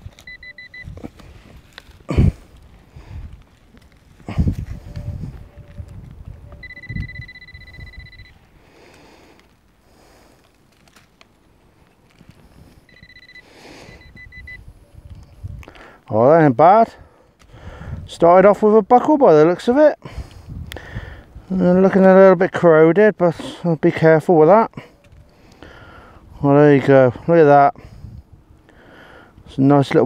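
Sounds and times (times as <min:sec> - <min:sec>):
metal detector pinpointer beeping: 0:00.0 - 0:01.2, 0:06.5 - 0:08.4, 0:12.9 - 0:15.4
soil rustling being handled: 0:00.0 - 0:13.4.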